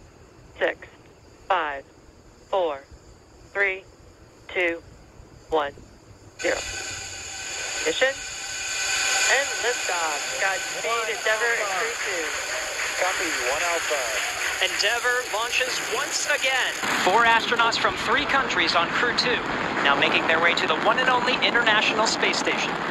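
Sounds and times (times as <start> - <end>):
rocket liftoff roar: 6.3 - 22.9
crowd cheering and whooping: 6.6 - 17.2.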